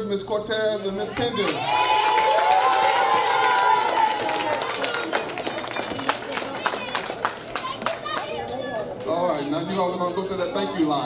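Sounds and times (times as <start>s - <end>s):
scattered hand clapping: 1.2s - 8.4s.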